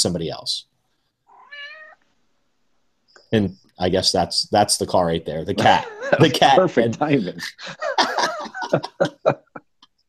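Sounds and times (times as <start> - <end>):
cat meowing: 1.3 - 2.0.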